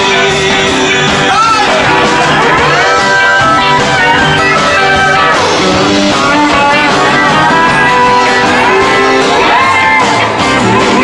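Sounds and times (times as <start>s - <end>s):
boogie band playing: 0.0s - 11.0s
electric guitar lead: 0.0s - 11.0s.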